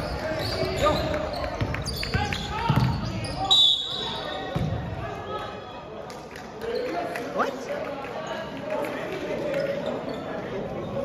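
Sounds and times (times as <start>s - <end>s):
basketball bouncing on wooden floor: 2.7s - 3.0s.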